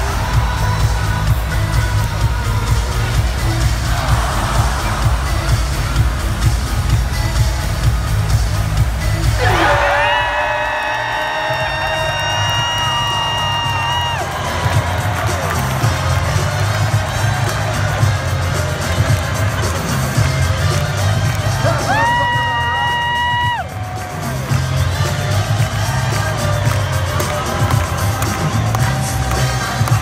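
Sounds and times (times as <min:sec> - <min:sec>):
music with pulsing bass beat: 0:00.0 - 0:30.0
crowd cheering: 0:03.8 - 0:05.7, 0:09.4 - 0:30.0.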